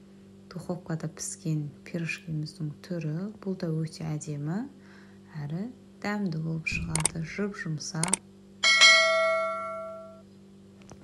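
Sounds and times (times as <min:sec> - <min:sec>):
sharp clicks: 0:06.7 - 0:07.3, 0:08.0 - 0:08.2
bright bell ding: 0:08.6 - 0:10.2.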